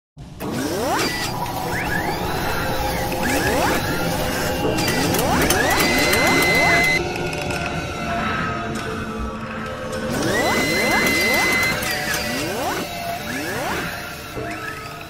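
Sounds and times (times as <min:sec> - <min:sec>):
mechanical whirring and clicking: 0:00.3 - 0:07.7, 0:09.9 - 0:15.0
rising pitch sweeps: 0:00.6 - 0:07.0, 0:10.1 - 0:15.0
steady high tone: 0:01.6 - 0:07.0, 0:10.1 - 0:14.7.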